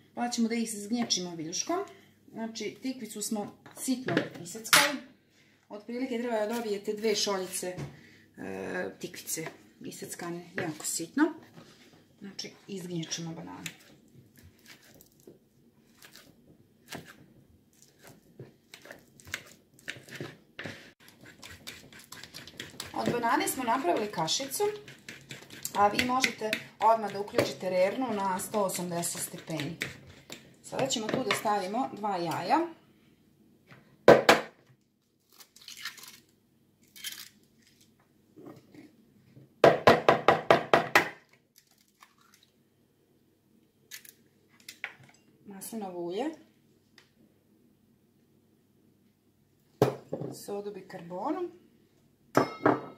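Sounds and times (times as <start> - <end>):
fork mashing bananas in bowl: 15.9 - 31.7.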